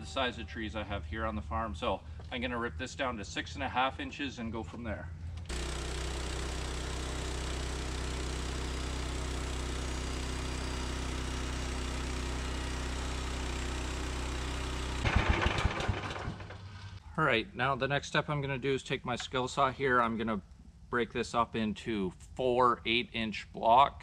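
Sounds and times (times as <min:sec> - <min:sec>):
sawmill engine running: 0:05.5 - 0:17.0.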